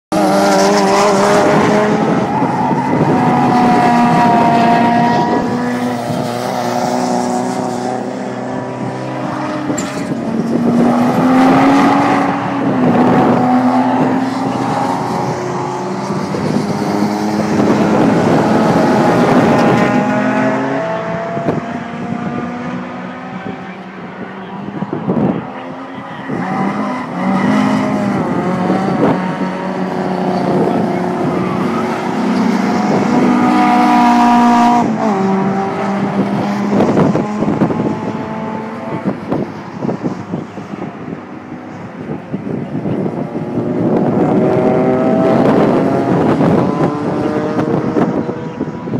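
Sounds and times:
race car engines revving past: 0:00.1 - 0:48.9.

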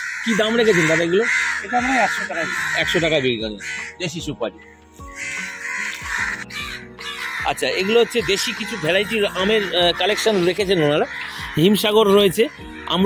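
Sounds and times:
harsh crow-like bird calls: 0:00.0 - 0:13.0
man's voice: 0:07.4 - 0:13.0.

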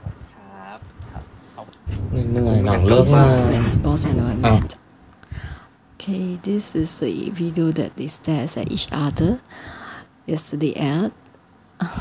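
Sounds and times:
quiet voices: 0:00.3 - 0:04.8
drawn-out vocal sound: 0:01.8 - 0:04.8
people talking loudly: 0:01.9 - 0:04.8.

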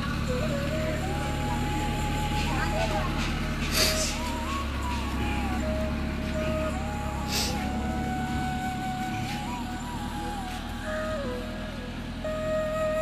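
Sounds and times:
slow melody of thin notes: 0:00.0 - 0:13.0
van engine rumbling: 0:00.0 - 0:13.0.

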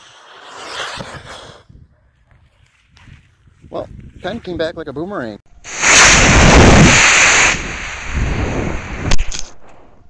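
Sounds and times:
wind rushing on microphone: 0:01.0 - 0:04.8, 0:05.8 - 0:10.0
rocket motor hissing: 0:05.7 - 0:09.4.

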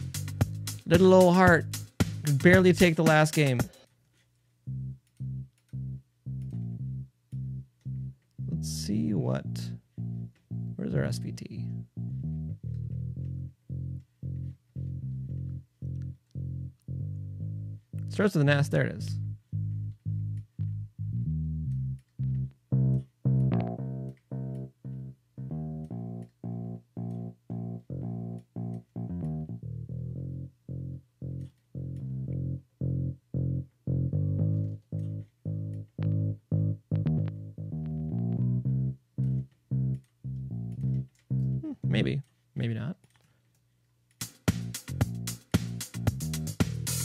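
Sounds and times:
staccato disco bass line: 0:00.0 - 0:03.8, 0:04.7 - 0:42.2, 0:44.2 - 0:47.0.

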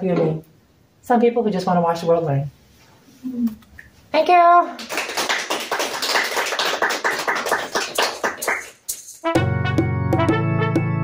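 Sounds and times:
audience applause: 0:04.8 - 0:08.7.

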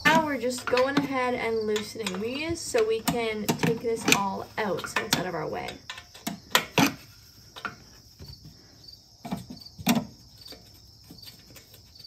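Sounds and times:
wrench clinking on metal bolts: 0:00.0 - 0:07.0
crickets chirping: 0:00.0 - 0:12.0.

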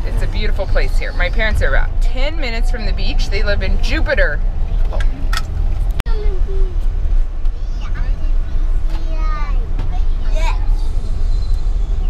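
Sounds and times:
road and engine rumble in van: 0:00.0 - 0:12.0.

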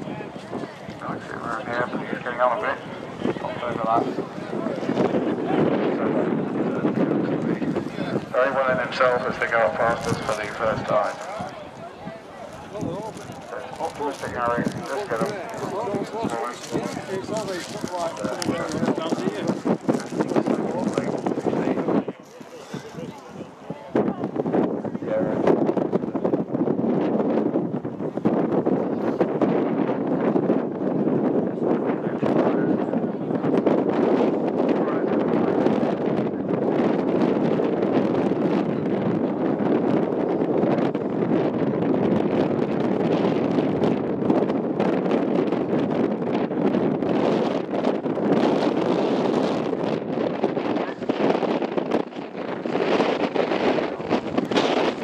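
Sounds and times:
people talking: 0:00.0 - 0:26.3
wind buffeting microphone: 0:00.0 - 0:55.0.

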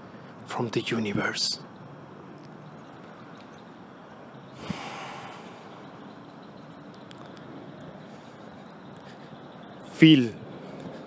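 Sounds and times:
deep breath through the nose: 0:04.6 - 0:05.8.

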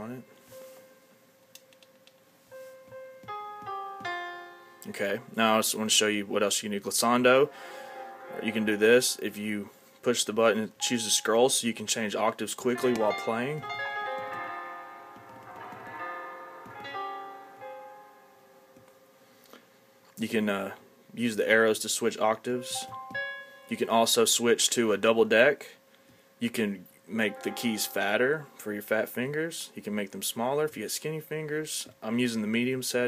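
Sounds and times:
piano notes ringing: 0:00.0 - 0:19.4, 0:22.4 - 0:24.5, 0:27.1 - 0:29.6.

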